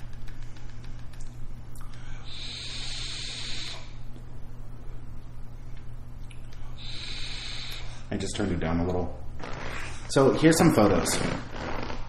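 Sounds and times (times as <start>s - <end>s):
steady low hum: 0.0s - 12.0s
vapour hissing through coil: 2.2s - 4.0s, 6.8s - 8.0s.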